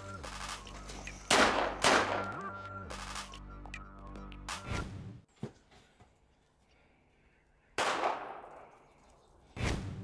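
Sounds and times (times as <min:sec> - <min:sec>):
pistol shot with echo: 0:01.3 - 0:02.3, 0:07.8 - 0:08.4.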